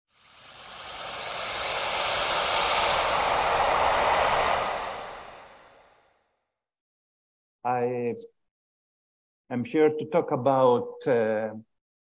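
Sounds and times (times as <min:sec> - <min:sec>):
rushing whoosh: 0:00.1 - 0:06.0.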